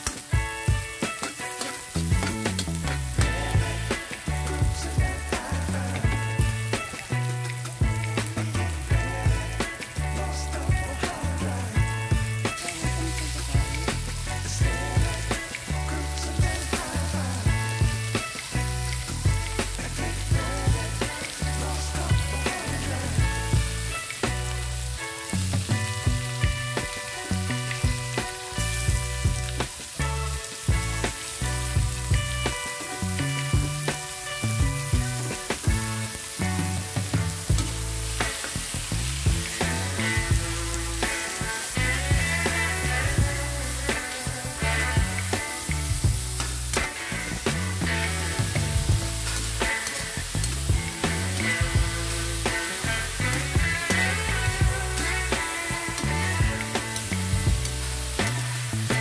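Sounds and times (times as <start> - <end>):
background music with beat: 0.0 - 59.0
meat and onions sizzling in wok: 0.0 - 59.0.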